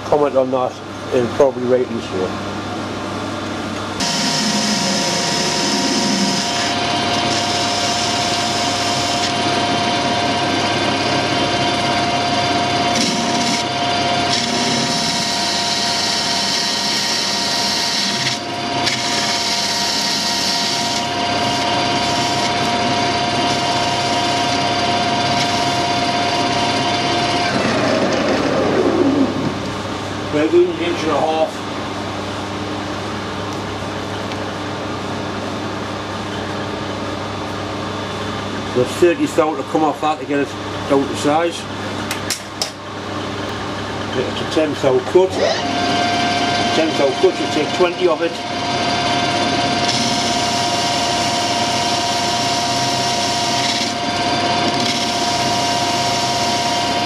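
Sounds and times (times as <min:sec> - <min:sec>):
metal lathe whining: 0:04.0 - 0:29.3, 0:44.8 - 0:57.0.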